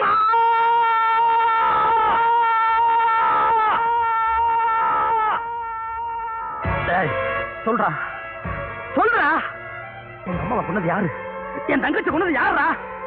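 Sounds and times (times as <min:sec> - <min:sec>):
man wailing: 0:00.0 - 0:06.7.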